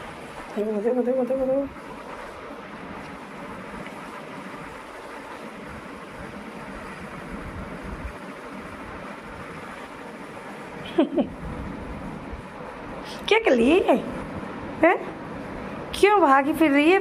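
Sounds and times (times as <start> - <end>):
steady rushing noise: 0.0 - 17.0
unsteady low rumble: 0.0 - 17.0.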